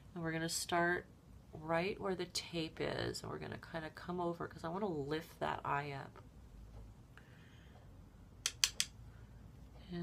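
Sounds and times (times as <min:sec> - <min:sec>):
sharp clicks of makeup gear: 0:08.4 - 0:09.0.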